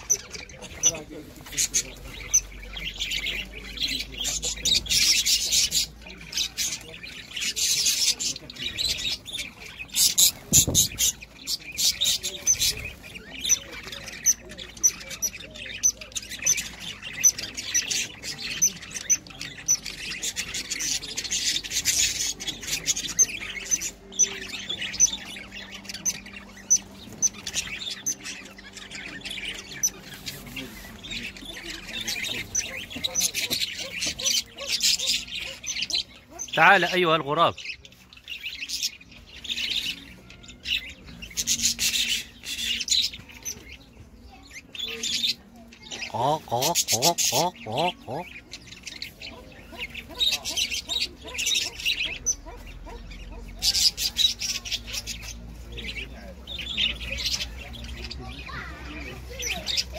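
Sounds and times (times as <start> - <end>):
budgerigars chirping and squawking: 0.0 - 59.9.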